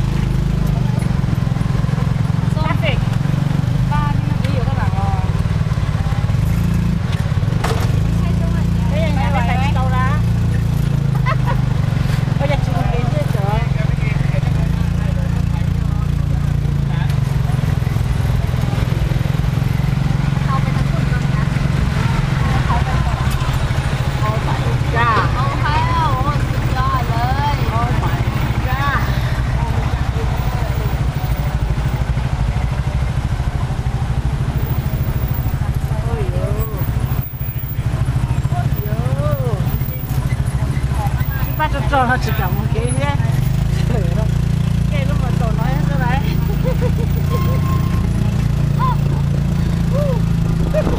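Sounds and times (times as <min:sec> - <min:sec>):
motor scooter engine running: 0:00.0 - 0:50.9
voices talking: 0:00.0 - 0:50.9.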